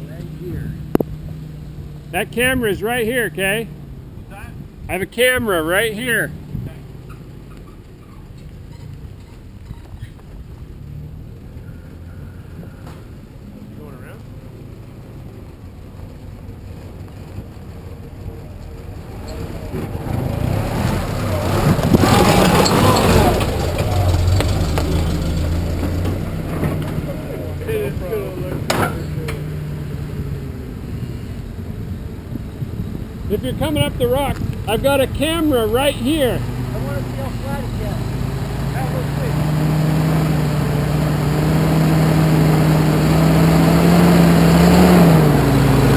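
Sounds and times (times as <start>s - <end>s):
engine running at low revs: 10.3s - 45.9s
tyres rushing on rock: 19.1s - 27.3s.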